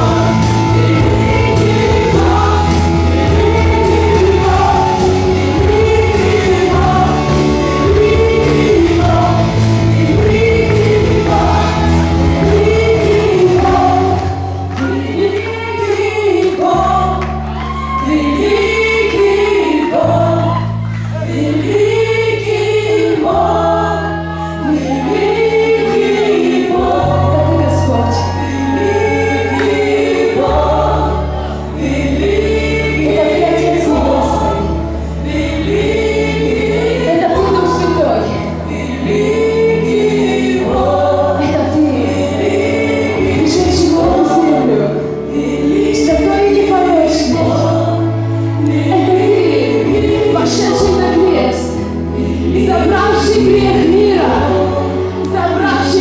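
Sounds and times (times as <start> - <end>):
electric guitars: 0.0 - 22.8
bass line of held notes: 0.0 - 56.0
keyboard: 0.0 - 56.0
women singing together: 0.0 - 56.0.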